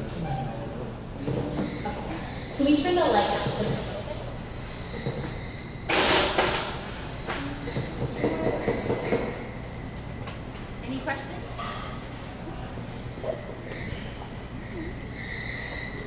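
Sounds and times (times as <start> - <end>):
indistinct talk in large room: 0.0 - 16.0.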